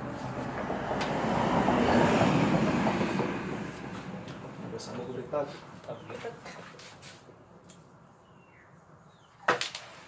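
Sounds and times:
vehicle passing by: 0.0 - 6.1.

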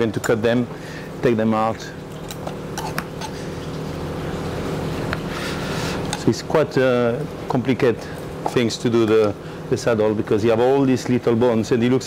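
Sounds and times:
kitchen equipment humming: 0.0 - 12.0.

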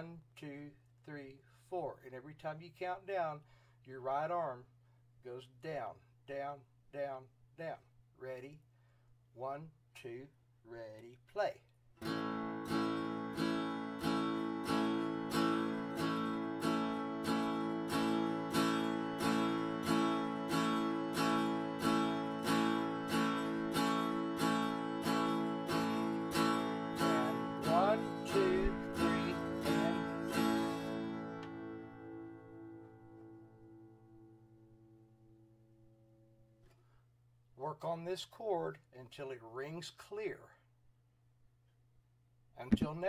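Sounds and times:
guitar strumming a chord: 12.0 - 35.4.

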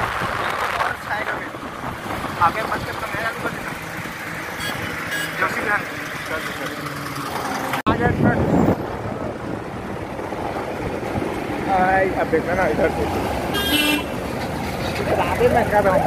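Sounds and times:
highway traffic from inside vehicle: 0.0 - 16.0.

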